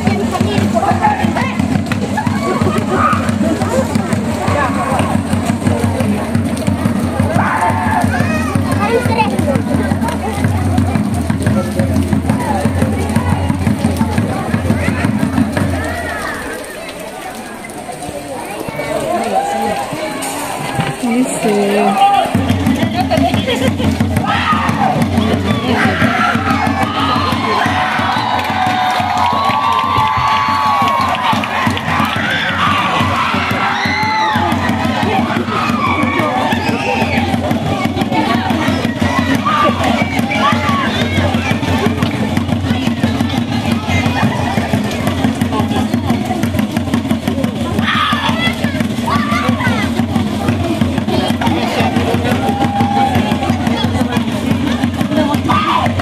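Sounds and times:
fast steady drumming: 0.0s - 16.6s, 18.7s - 56.0s
crowd cheering: 0.0s - 56.0s
shouted cries: 2.1s - 3.8s, 7.2s - 8.6s, 24.2s - 37.9s, 52.3s - 53.4s, 55.4s - 56.0s.

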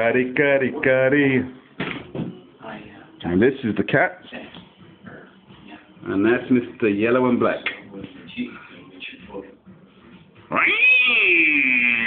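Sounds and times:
cat meowing: 10.5s - 12.0s.

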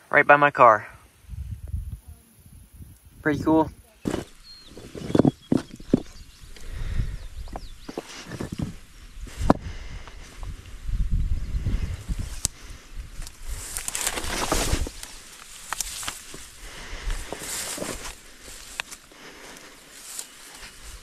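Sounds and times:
wind rumble on microphone: 1.2s - 15.1s
small bird chirping: 3.7s - 8.7s
microphone handling knocks and rustles: 4.0s - 6.3s, 7.4s - 10.6s, 13.6s - 16.5s.

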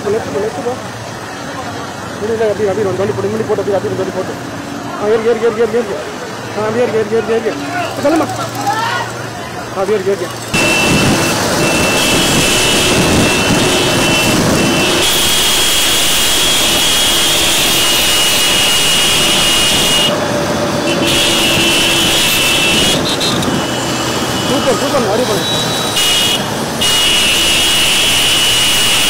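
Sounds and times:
car and motorcycles road noise: 0.0s - 29.0s
voices calling out: 0.0s - 29.0s
long high steady tones: 10.5s - 29.0s.

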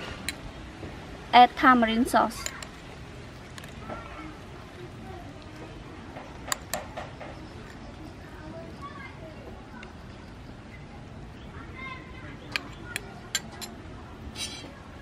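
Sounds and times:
metal spoon clinking on ceramic bowl: 12.6s - 13.8s.

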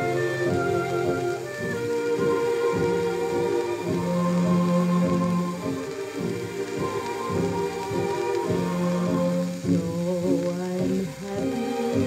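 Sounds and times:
dance orchestra music on record: 0.0s - 12.0s
record surface hiss and crackle: 0.0s - 12.0s.

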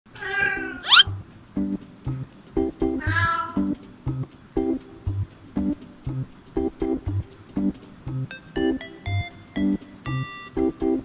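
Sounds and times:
cat meowing: 0.2s - 1.1s
plucked-string background music: 0.2s - 11.0s
quick rising squeak: 0.8s - 1.1s.

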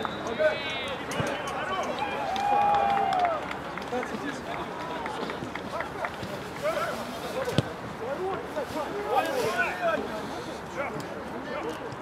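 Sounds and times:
footfalls on artificial turf: 5.1s - 10.0s.

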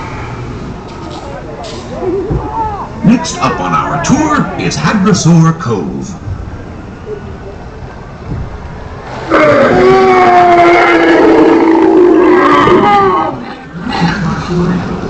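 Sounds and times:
dinosaur call over speakers: 9.2s - 15.0s.

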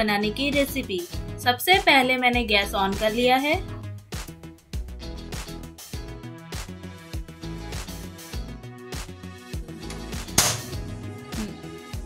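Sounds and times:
background music with steady beat: 0.0s - 12.0s
stove igniter snap: 9.8s - 10.9s.

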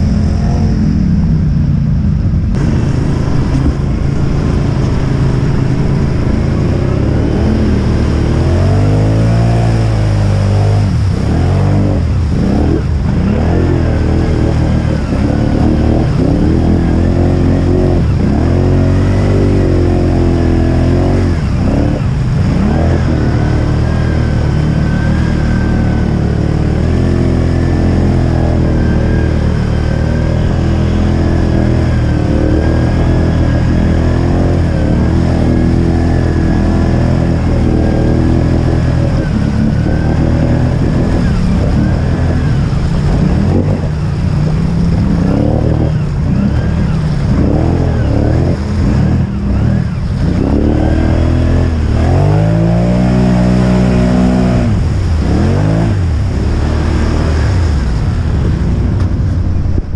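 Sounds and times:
thin steady whine: 0.0s - 10.3s
atv engine revving: 2.5s - 59.9s.

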